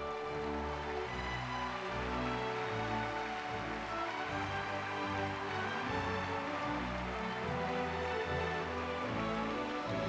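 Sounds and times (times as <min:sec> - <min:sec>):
orchestral music with long chords: 0:00.0 - 0:10.0.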